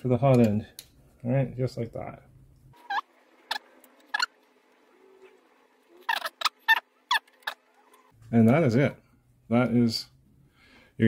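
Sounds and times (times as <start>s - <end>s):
screw squeaking and clicking: 6.1s - 8.1s.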